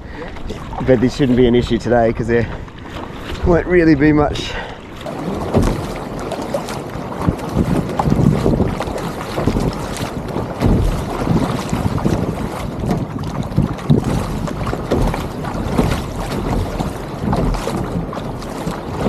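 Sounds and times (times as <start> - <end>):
paddle blades dipping in water: 0.0 - 19.0
water sloshing along kayak hull: 0.0 - 19.0
wind buffeting microphone: 0.0 - 19.0.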